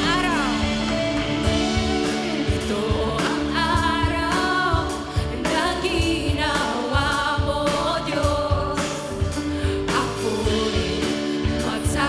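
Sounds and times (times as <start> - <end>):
woman singing into a microphone: 0.0 - 1.0, 1.6 - 12.0
steady beat: 0.0 - 5.1
electric guitar: 0.0 - 6.8, 8.4 - 12.0
backing singers: 0.0 - 8.8.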